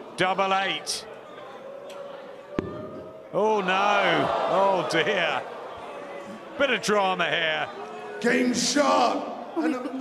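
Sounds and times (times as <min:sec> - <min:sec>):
faint arena noise: 0:00.0 - 0:10.0.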